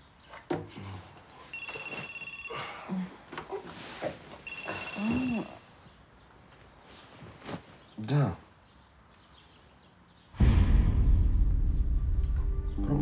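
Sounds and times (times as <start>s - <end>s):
electronic telephone ringing: 1.6s - 2.8s, 4.5s - 5.6s.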